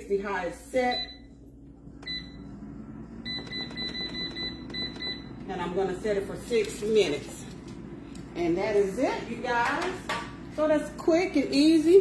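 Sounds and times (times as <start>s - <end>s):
low steady hum: 0.0s - 12.0s
air fryer control panel beeping: 0.9s - 1.3s, 2.0s - 5.5s.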